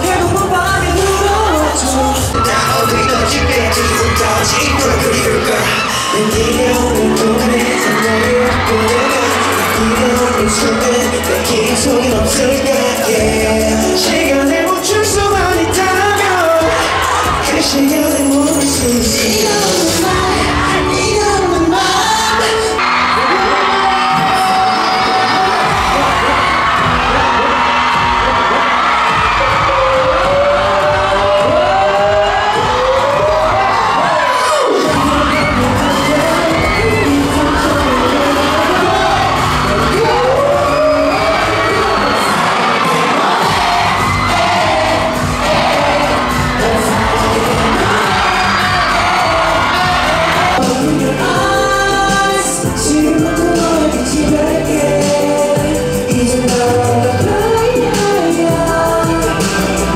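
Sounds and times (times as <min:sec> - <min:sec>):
audience cheering: 0:00.0 - 0:55.5
boy band singing over pop track: 0:00.0 - 0:59.9.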